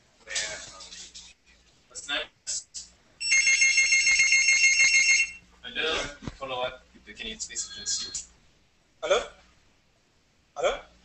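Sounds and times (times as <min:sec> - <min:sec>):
telephone ringing: 0:03.2 - 0:05.4.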